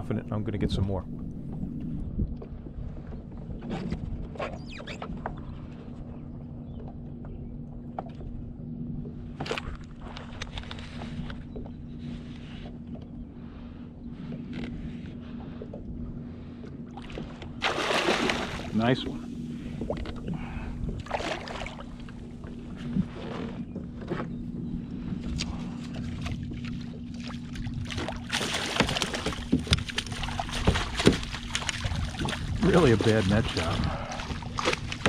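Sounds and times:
steady low hum: 0.0s - 35.0s
water lapping against plastic hull: 0.9s - 35.0s.

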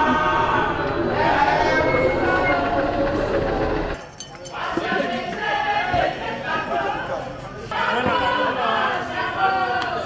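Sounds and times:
group of people singing: 0.0s - 3.4s, 4.5s - 10.0s.

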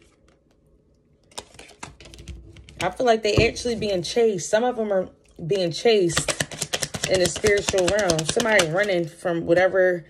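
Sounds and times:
person speaking: 2.8s - 10.0s.

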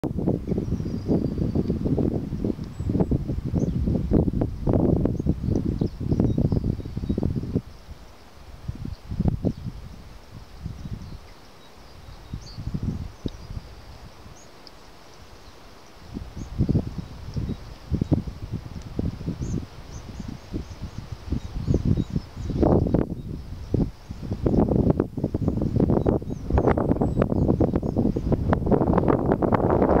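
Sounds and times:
wind buffeting microphone: 0.0s - 30.0s
faint bird chirps: 10.5s - 18.4s.

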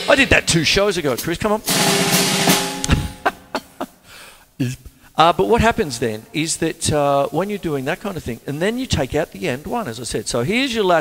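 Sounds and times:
drum hits: 0.0s - 3.8s
cymbal crash: 1.6s - 3.3s.

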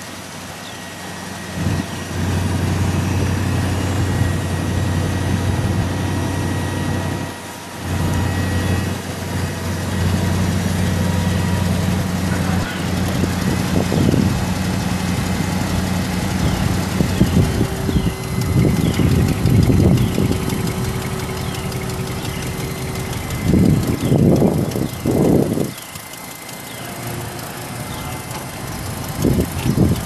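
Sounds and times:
truck engine idling: 0.0s - 30.0s.

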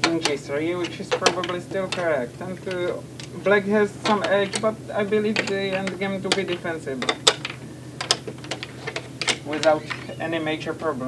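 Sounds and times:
chess pieces knocking on wooden board: 0.0s - 10.2s.

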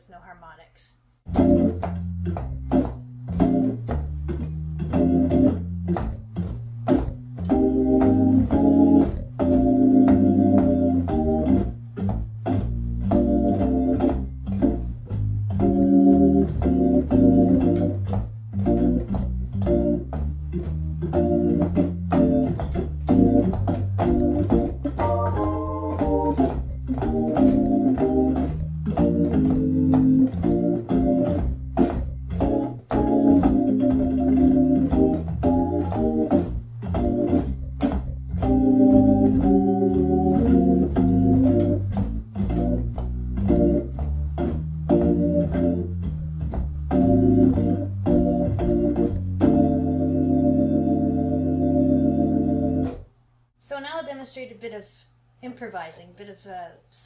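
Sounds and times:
organ playing blues: 1.3s - 53.1s.

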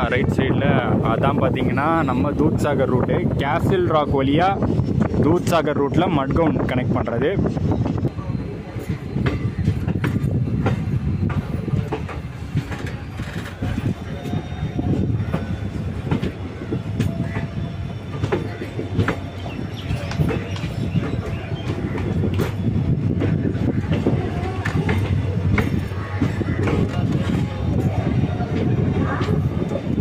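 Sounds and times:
train wheels clattering over rail joints: 8.7s - 30.0s.

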